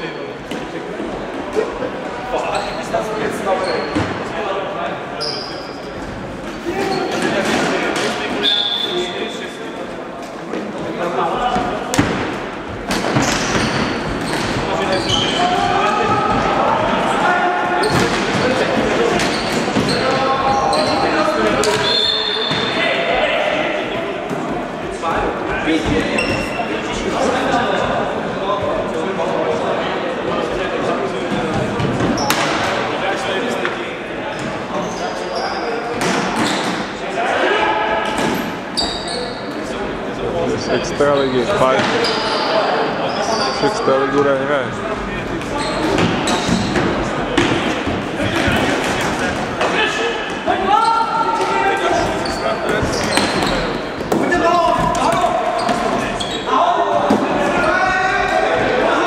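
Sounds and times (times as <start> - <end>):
shoes squeaking on wooden floor: 2.4 - 4.3, 13.0 - 16.6, 17.7 - 22.9, 25.8 - 26.7, 38.3 - 39.5, 40.6 - 43.9, 45.3 - 48.7, 50.5 - 56.7
players shouting: 14.6 - 24.0, 49.5 - 59.0.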